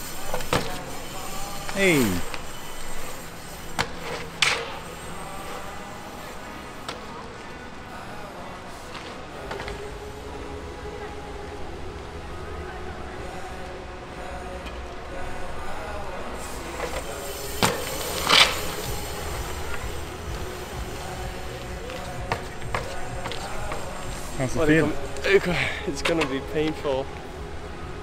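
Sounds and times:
bicycle rolling over paving stones: 16.4s - 27.3s.

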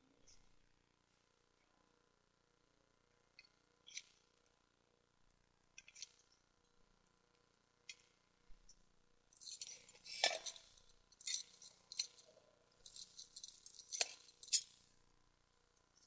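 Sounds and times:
small clinking and jangling: 9.3s - 16.0s.

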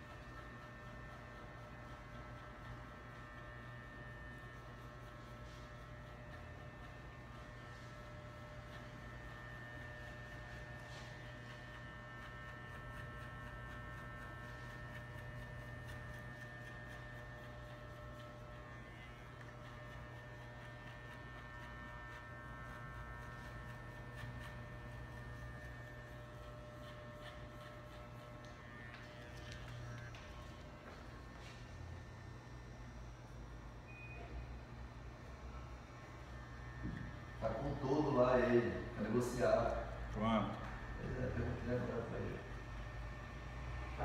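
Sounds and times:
electric hair clippers humming: 0.0s - 44.0s.

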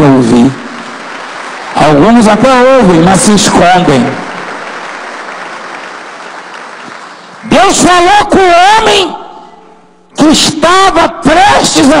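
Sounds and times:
congregation applauding: 0.0s - 8.8s.

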